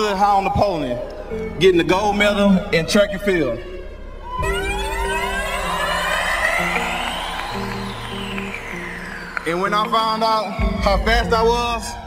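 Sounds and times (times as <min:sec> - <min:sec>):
gliding synth tones: 0:02.5 - 0:09.9
stepping synth bass: 0:02.7 - 0:09.7.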